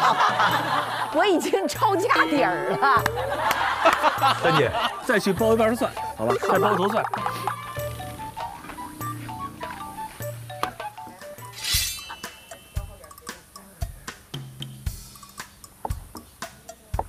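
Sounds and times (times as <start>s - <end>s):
light background music: 0.0s - 17.0s.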